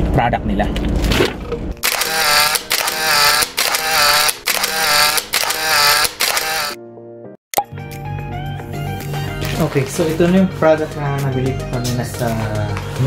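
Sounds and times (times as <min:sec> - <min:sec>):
ratcheting mechanical click and whirr: 0:01.8 - 0:06.8.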